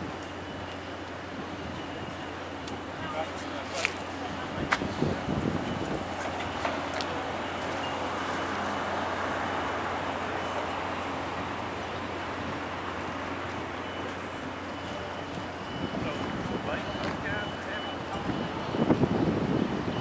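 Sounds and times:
street traffic: 0:00.0 - 0:20.0.

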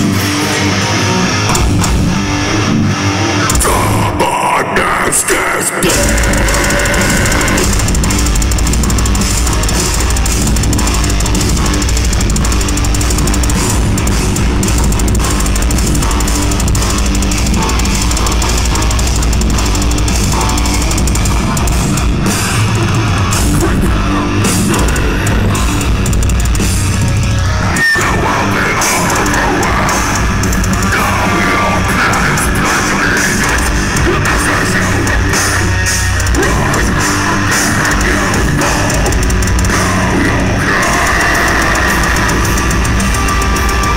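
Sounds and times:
heavy metal band playing: 0:00.0 - 0:43.9.

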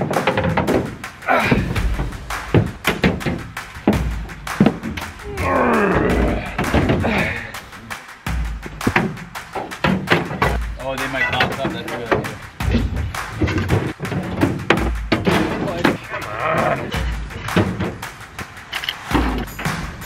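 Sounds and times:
music: 0:00.0 - 0:20.0.

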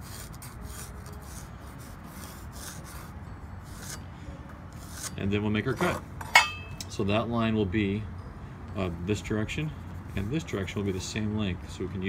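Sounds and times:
pencil scratching on wood: 0:00.0 - 0:04.0, 0:04.8 - 0:05.1.

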